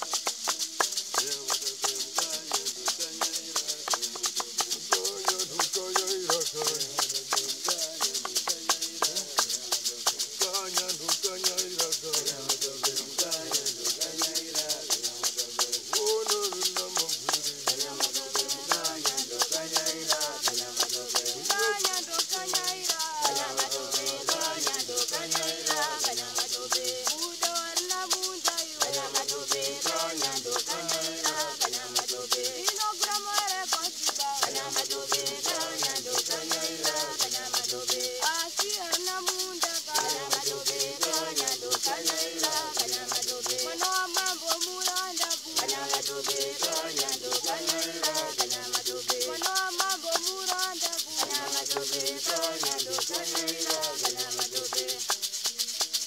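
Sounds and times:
gourd rattles shaken: 0:00.0 - 0:56.0
mbira melody: 0:00.0 - 0:56.0
men singing: 0:00.0 - 0:56.0.

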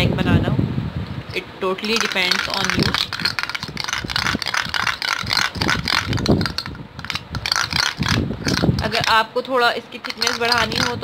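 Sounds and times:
metal spoon scraping metal bowl: 0:01.8 - 0:09.2, 0:10.0 - 0:11.0.

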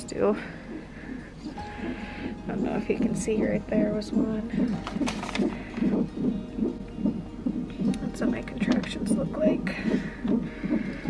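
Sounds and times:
whooshing fetal heartbeat: 0:00.0 - 0:11.0.

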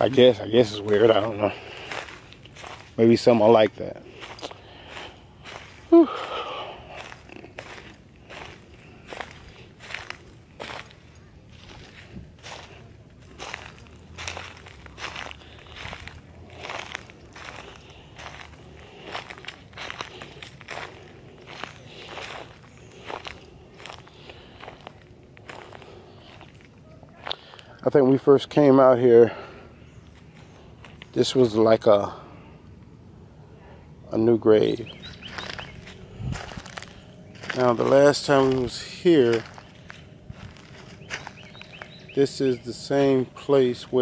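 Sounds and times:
footsteps on dry leaves: 0:00.0 - 0:27.6, 0:28.4 - 0:32.2, 0:34.2 - 0:44.0.

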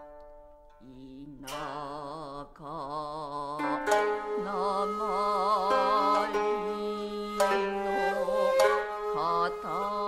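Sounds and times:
shamisen pluck: 0:00.0 - 0:02.3, 0:03.5 - 0:10.0
man singing with vibrato: 0:00.8 - 0:10.0.

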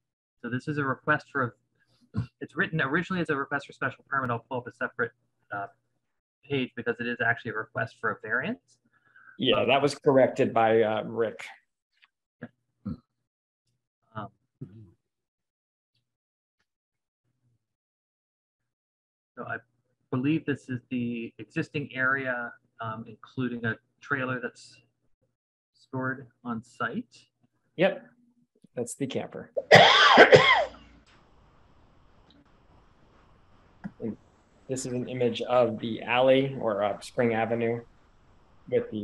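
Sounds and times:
person murmuring: 0:09.4 - 0:11.5, 0:33.9 - 0:37.8
person coughing: 0:29.6 - 0:30.8.

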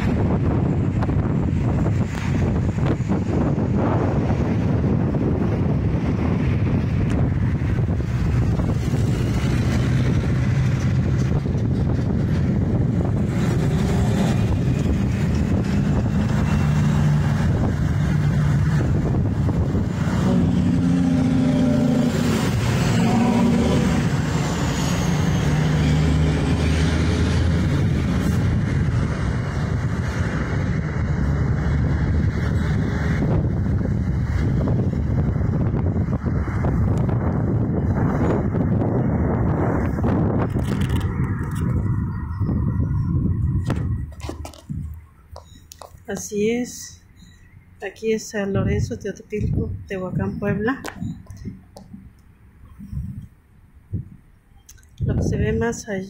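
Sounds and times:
heavy engine: 0:00.0 - 0:47.8
road traffic passing: 0:00.0 - 0:56.0
wind on microphone: 0:00.0 - 0:56.0.

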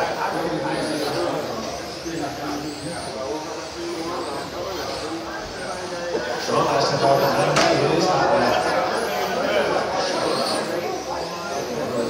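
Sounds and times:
electric rc car motors whining: 0:00.0 - 0:12.0.

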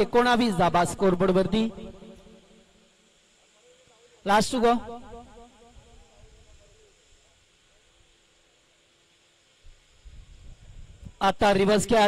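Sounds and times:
faint background hiss: 0:00.0 - 0:12.0.

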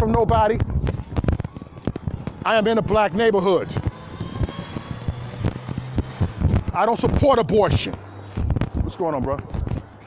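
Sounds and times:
vehicle engine hum: 0:00.0 - 0:10.0
handling bumps on microphone: 0:03.7 - 0:10.0.

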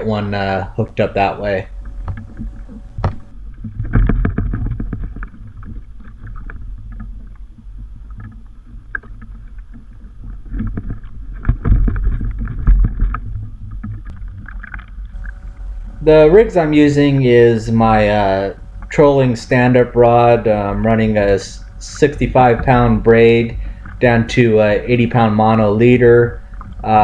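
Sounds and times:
wind rumbling on microphone: 0:00.0 - 0:27.0
waves slapping kayak hull: 0:01.2 - 0:27.0.

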